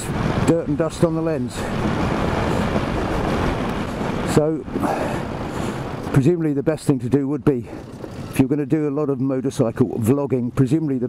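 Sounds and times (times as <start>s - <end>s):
motorcycle engine and wind roar: 0.0s - 11.0s.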